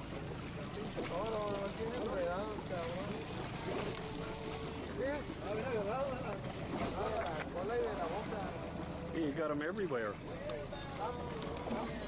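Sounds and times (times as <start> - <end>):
boat engine drone: 0.0 - 12.0
people's voices: 0.7 - 12.0.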